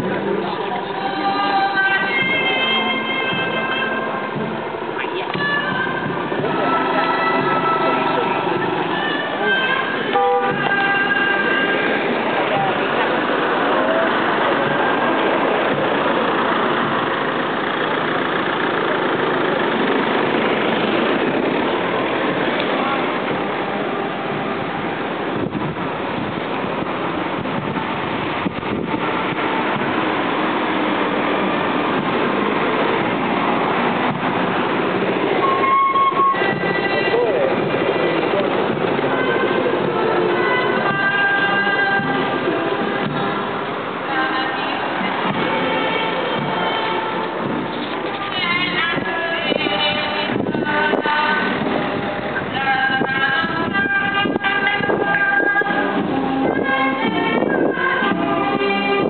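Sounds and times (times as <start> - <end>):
car traffic: 0.0 - 59.0
crowd talking: 0.0 - 59.0
held singing tones: 0.2 - 19.3, 29.2 - 59.0.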